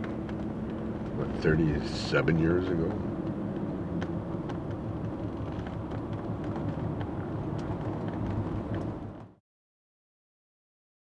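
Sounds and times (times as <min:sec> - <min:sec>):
low outdoor rumble: 0:00.0 - 0:09.4.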